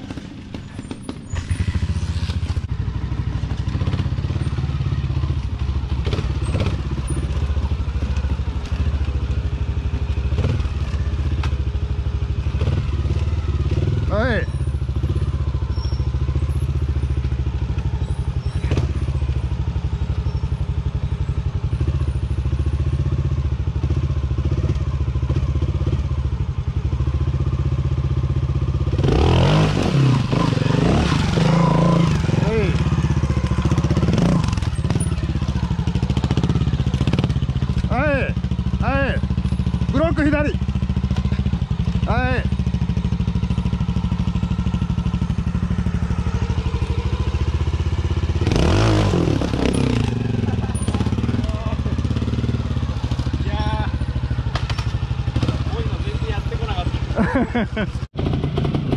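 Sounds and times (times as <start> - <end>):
motorcycle engine idling and revving: 0.0 - 58.9.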